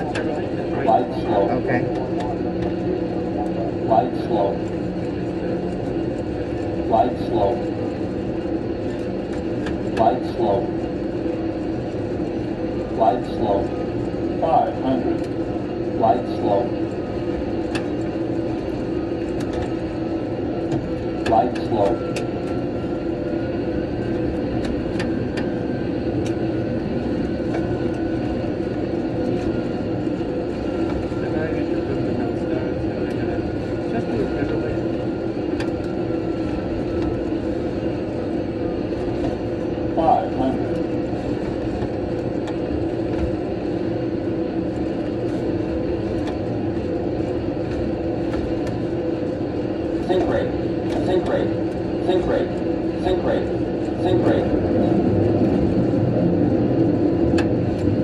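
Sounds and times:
jet engine and cockpit noise: 0:00.0 - 0:58.0.

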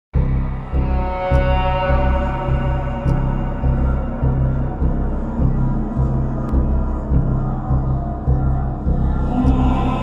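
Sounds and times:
dark horror intro music: 0:00.2 - 0:10.0.

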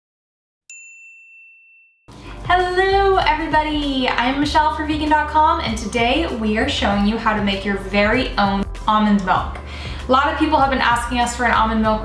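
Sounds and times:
bright ding: 0:00.7 - 0:02.0.

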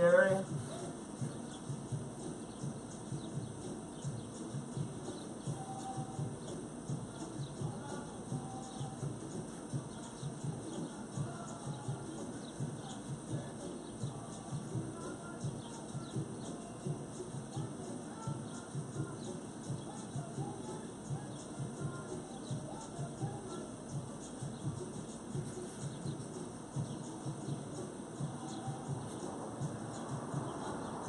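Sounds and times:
small birds chirping: 0:00.0 - 0:31.0.

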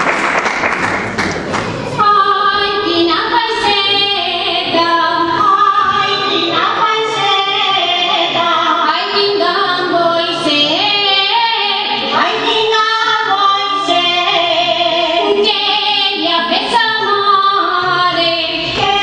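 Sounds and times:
women singing in unison: 0:02.0 - 0:19.0.

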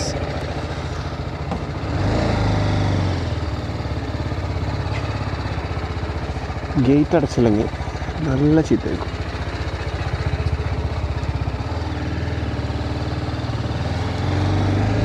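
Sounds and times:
motorcycle engine idling: 0:00.0 - 0:02.0, 0:02.6 - 0:15.0.

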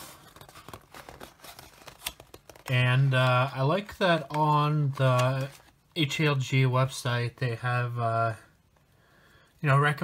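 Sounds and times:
cardboard box rustling: 0:00.0 - 0:05.8.

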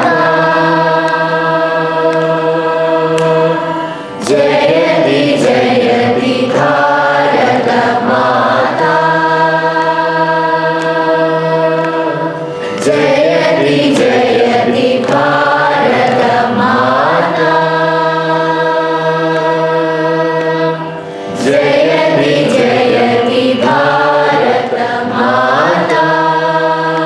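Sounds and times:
group singing in unison: 0:00.0 - 0:27.0.

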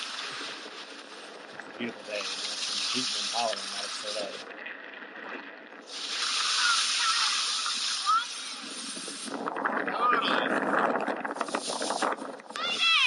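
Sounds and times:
skis scraping over snow: 0:00.0 - 0:04.4, 0:05.9 - 0:09.6
wind on microphone: 0:00.0 - 0:13.0.

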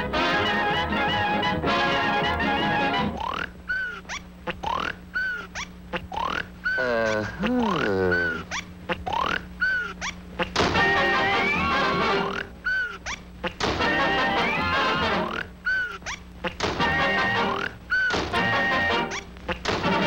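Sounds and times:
brass band music: 0:00.0 - 0:03.2, 0:10.8 - 0:12.2
cartoon snoring whistle: 0:07.8 - 0:08.4, 0:11.2 - 0:12.9, 0:14.3 - 0:15.9.

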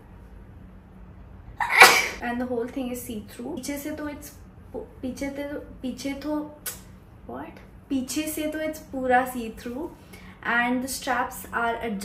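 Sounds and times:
woman sneezing: 0:01.6 - 0:02.2.

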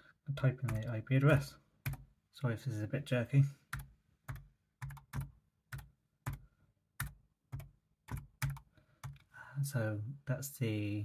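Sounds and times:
keyboard keystrokes: 0:03.8 - 0:06.4, 0:07.0 - 0:09.2.

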